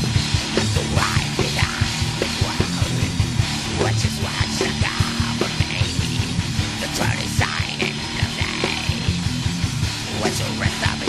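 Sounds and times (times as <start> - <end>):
distorted electric guitars and bass: 0.0 - 11.0
fast kick-drum beats: 0.0 - 11.0.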